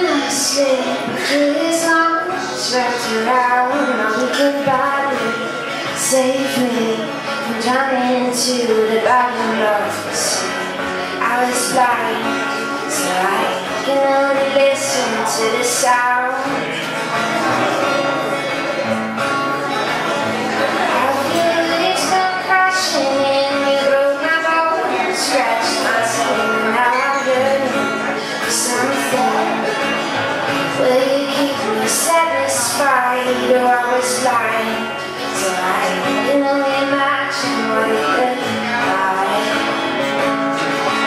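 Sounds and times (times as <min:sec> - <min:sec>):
woman singing: 0:00.0 - 0:16.8, 0:20.9 - 0:29.7, 0:30.5 - 0:39.9
acoustic guitar: 0:00.0 - 0:41.0.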